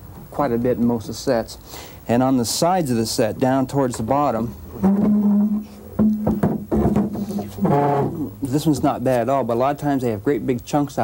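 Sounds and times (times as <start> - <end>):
soft knocks: 4.8 - 8.3.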